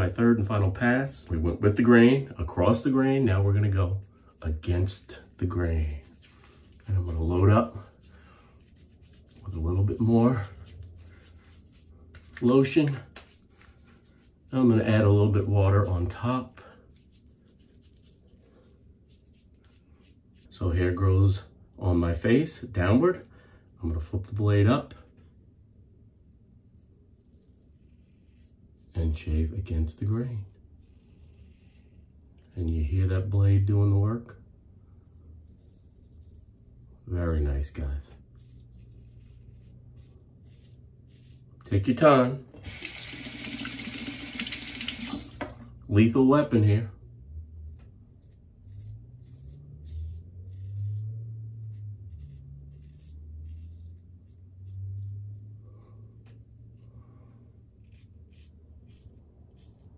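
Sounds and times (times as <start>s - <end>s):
razor scraping stubble: 0.0s - 21.3s, 26.6s - 45.4s, 47.6s - 55.4s, 56.6s - 59.9s.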